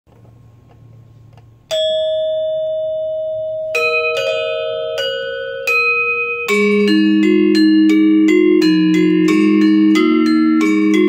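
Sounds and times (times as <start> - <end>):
metallophone notes ringing: 1.7 - 11.0.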